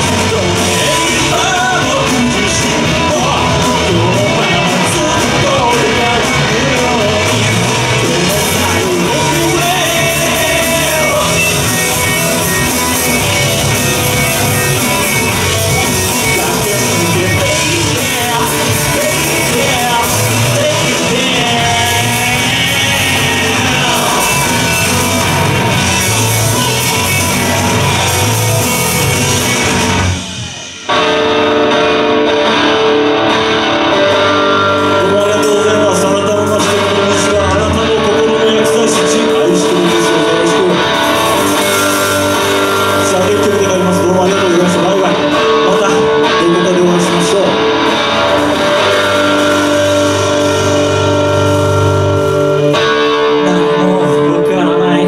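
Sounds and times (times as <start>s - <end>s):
drum kit: 0.0s - 54.6s
bass guitar: 0.0s - 55.0s
electric guitars: 0.0s - 55.0s
rock band playing live: 0.0s - 55.0s.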